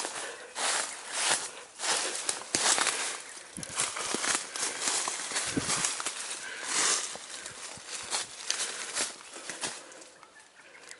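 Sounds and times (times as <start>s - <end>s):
footsteps on dry leaves: 0.0s - 10.8s.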